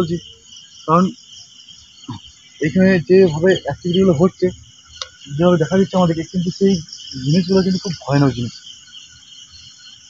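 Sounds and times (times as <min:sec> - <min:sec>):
crickets chirring: 0:00.0 - 0:10.0
person's voice syllable: 0:02.6 - 0:04.5, 0:05.3 - 0:08.5.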